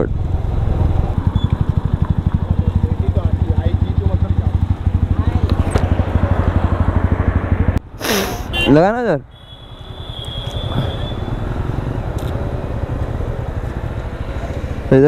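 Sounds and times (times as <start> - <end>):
motorcycle engine idling: 0.1 - 7.7, 9.6 - 15.0.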